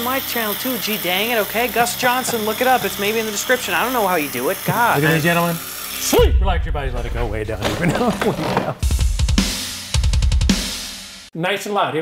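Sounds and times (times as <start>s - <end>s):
drum kit hits and fill: 6.1s - 11.3s.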